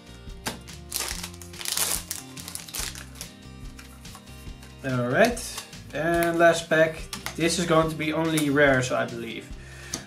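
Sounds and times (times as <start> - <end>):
background music with held tones: 0.0 - 10.0
wrapper crinkling: 0.9 - 4.0.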